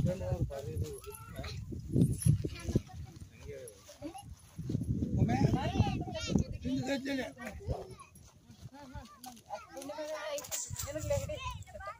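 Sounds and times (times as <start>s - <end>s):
people talking at once: 0.0s - 11.9s.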